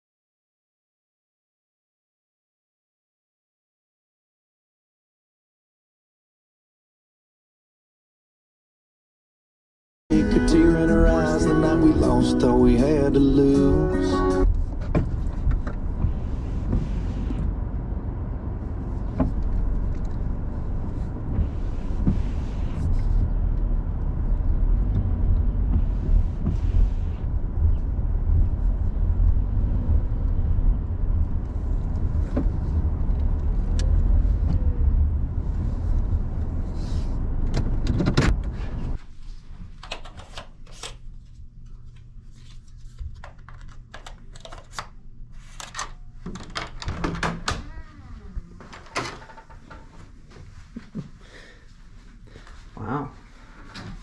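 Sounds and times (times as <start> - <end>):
car engine and road rumble: 10.1 - 40.1.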